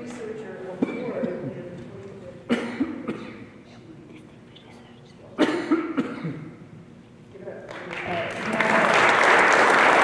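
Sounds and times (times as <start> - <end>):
person coughing: 2.5 - 3.6, 5.4 - 6.6.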